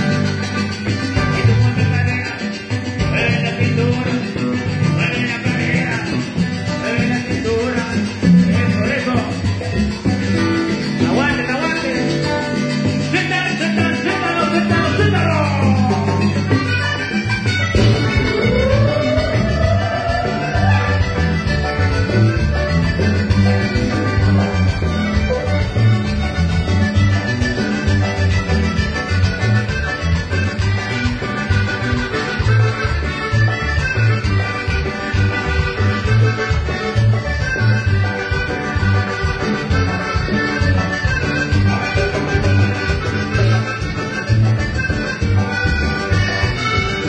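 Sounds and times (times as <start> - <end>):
latin dance music: 0.0 - 47.0.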